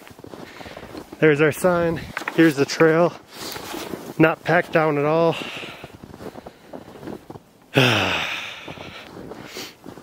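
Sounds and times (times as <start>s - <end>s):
faint rustling: 0.0s - 7.5s
man sighing heavily: 7.7s - 9.8s.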